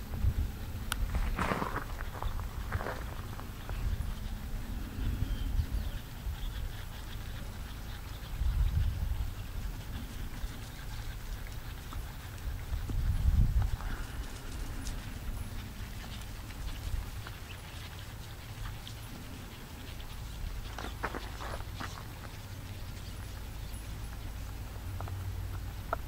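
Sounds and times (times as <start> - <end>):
steady low rumble: 0.0 - 26.0
faint horse hoofbeats on grass: 0.1 - 26.0.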